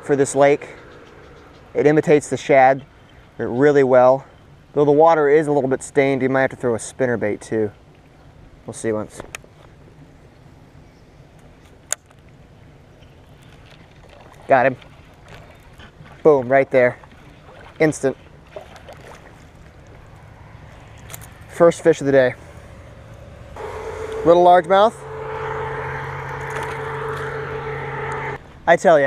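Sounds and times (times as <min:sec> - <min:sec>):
steady droning hum: 0:16.7 - 0:28.6.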